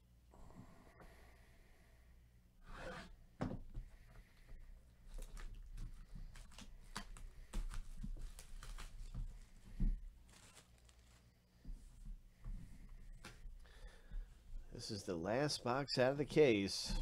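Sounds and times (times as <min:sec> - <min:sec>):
plastic shrink wrap crackling: 0:06.3 - 0:09.5, 0:10.2 - 0:11.3.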